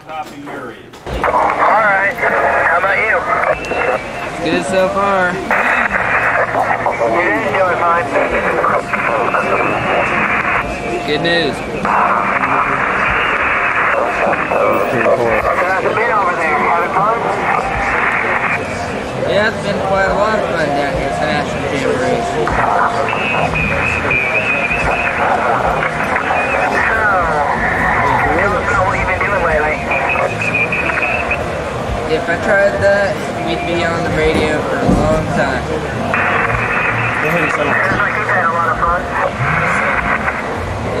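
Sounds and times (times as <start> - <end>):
radio static: 1.1 - 41.0
voice over two-way radio: 1.2 - 18.8, 20.4 - 31.4, 36.1 - 40.5.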